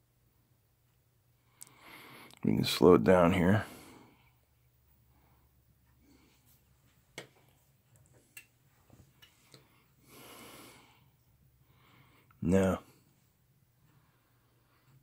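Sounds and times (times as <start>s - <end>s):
soft breath: 1.4s - 2.4s, 3.5s - 6.8s, 8.8s - 15.0s.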